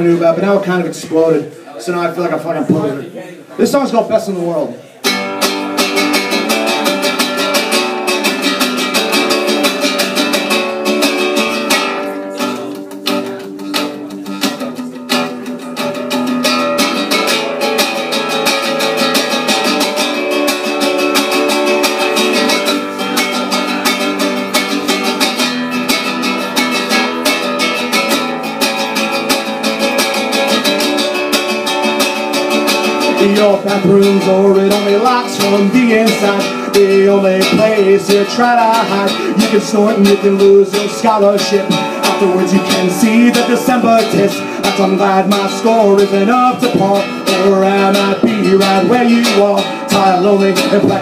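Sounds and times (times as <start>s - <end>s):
acoustic guitar strumming: 3.6s - 51.0s.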